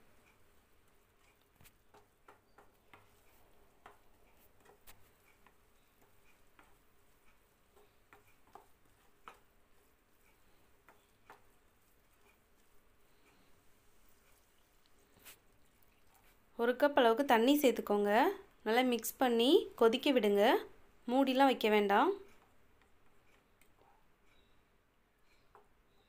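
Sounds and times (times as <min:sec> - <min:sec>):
spatula scraping a pan: 0:00.9 - 0:16.3.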